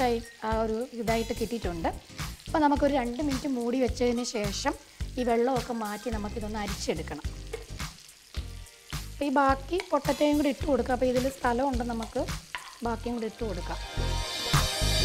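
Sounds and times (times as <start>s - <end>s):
vegetables sizzling in oil: 0.0s - 15.0s.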